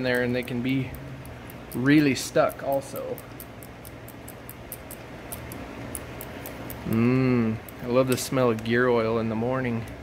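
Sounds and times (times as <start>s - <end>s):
wrench light metallic clicks: 0.0s - 6.9s
low steady hum: 0.0s - 10.0s.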